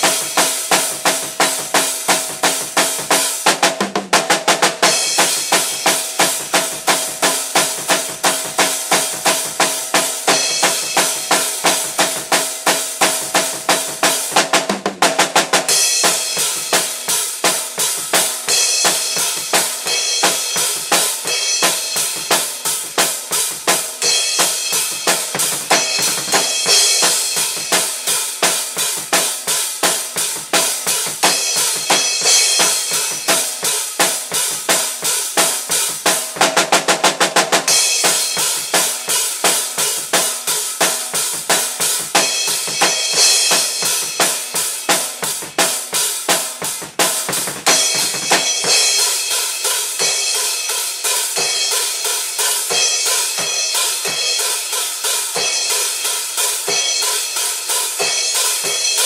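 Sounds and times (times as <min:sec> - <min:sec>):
drum kit fast beat: 0:00.0 - 0:59.0.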